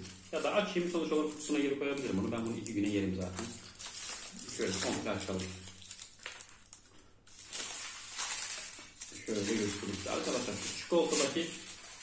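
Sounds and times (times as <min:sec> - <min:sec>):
foil wrapper crinkling: 0:00.0 - 0:12.0.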